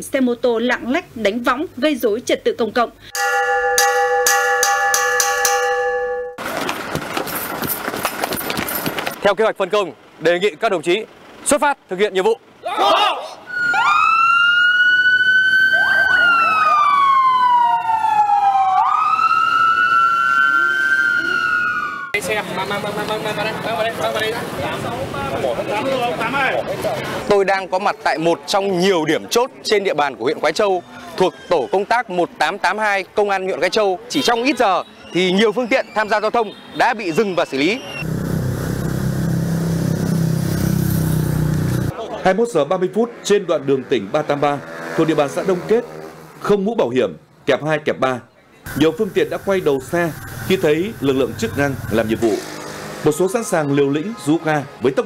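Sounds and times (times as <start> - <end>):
siren yelps: 12.6 - 22.2, 34.1 - 38.1
police siren wailing: 12.7 - 22.2, 49.4 - 54.5
motorcycle engine running: 38.0 - 41.9.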